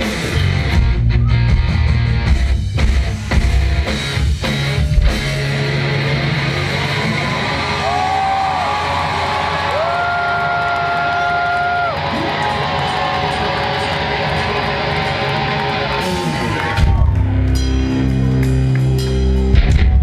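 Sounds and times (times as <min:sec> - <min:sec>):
electric guitar bending long notes: 0:00.0 - 0:20.0
rock band playing live: 0:00.0 - 0:20.0.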